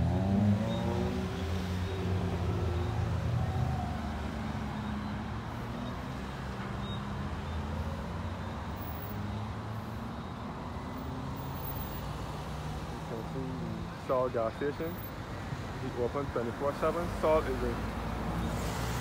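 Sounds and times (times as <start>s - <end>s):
cars passing: 0.0s - 19.0s.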